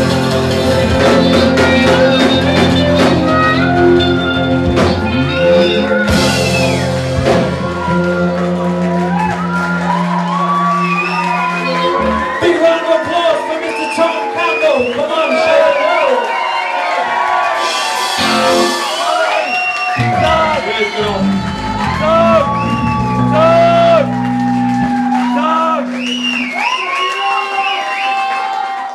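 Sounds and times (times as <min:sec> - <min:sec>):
rock blues band playing: 0:00.0 - 0:13.6, 0:17.5 - 0:19.3, 0:19.9 - 0:26.8
audience whooping and shouting: 0:01.4 - 0:28.9.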